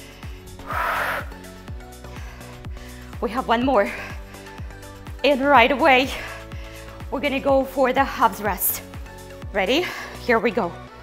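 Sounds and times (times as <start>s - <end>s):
upbeat workout music: 0.0s - 11.0s
woman exhaling forcefully: 0.6s - 1.4s.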